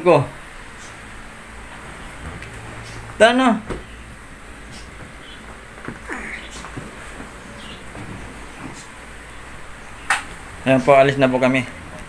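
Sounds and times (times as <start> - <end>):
low background hum: 0.0 - 12.0
clothing and phone rustling: 1.7 - 9.6.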